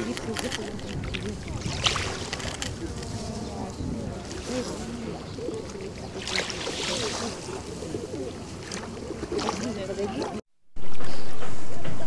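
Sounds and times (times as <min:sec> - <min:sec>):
wind on microphone: 0:00.0 - 0:10.1
waves lapping shingle: 0:00.0 - 0:10.4.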